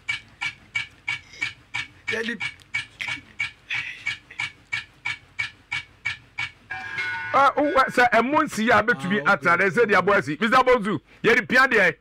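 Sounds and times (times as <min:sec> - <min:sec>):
rapid breathy panting: 0:00.6 - 0:02.1, 0:02.8 - 0:04.6
music: 0:06.7 - 0:07.6.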